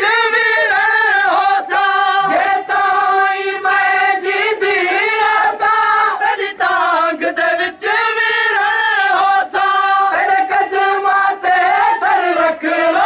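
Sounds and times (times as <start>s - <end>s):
man chanting a lament: 0.0s - 13.0s.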